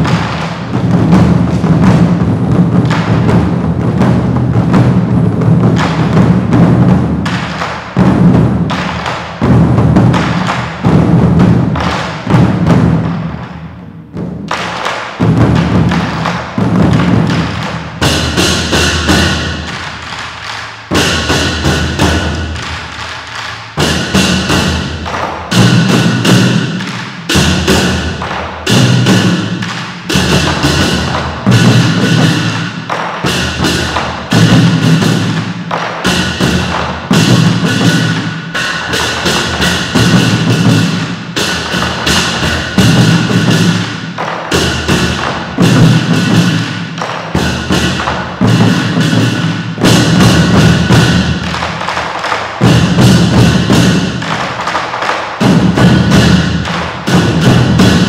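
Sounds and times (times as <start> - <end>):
drum ensemble driving rhythm: 0.0 - 58.0.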